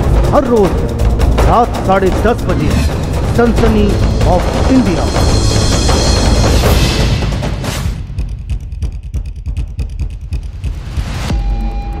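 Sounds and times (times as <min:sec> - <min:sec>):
pulsing low rumble: 0:00.0 - 0:12.0.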